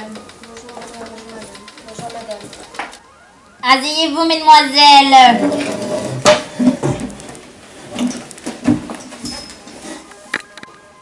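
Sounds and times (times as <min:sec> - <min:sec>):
wooden chairs scraping on floor: 0:05.4 - 0:10.2.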